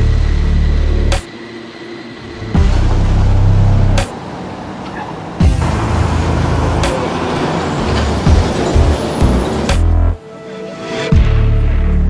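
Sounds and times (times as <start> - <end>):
background music: 0.0 - 1.6, 2.3 - 4.4, 5.3 - 12.0
heavy vehicle engine rumbling: 0.0 - 12.0.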